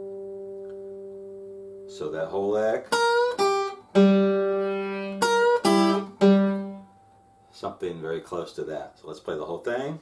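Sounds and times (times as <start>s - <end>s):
fingerpicked acoustic guitar: 0.0s - 2.0s, 2.7s - 7.5s.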